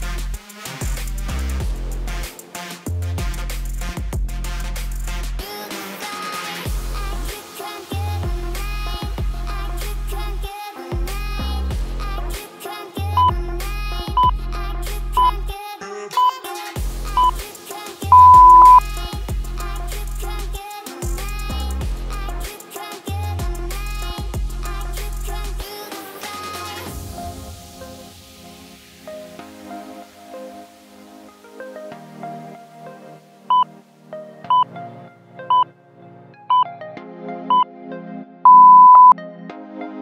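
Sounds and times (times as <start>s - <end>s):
music with pulsing bass: 0.0s - 5.4s, 18.1s - 22.5s, 23.3s - 25.6s
background music: 0.0s - 38.5s, 39.2s - 40.0s
interval timer beeps: 18.1s - 18.8s, 38.5s - 39.2s.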